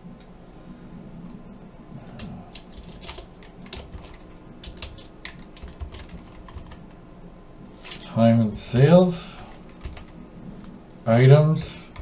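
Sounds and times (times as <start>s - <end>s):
typing on computer keyboard: 2.2s - 6.9s, 9.6s - 10.2s.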